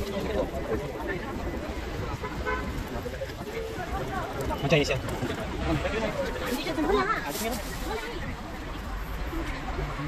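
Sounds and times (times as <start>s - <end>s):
crowd voices: 0.0s - 10.0s
low traffic rumble: 0.0s - 10.0s.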